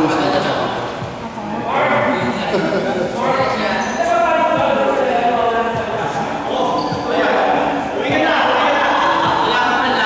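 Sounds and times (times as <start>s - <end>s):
men's voices echoing: 0.0s - 10.0s.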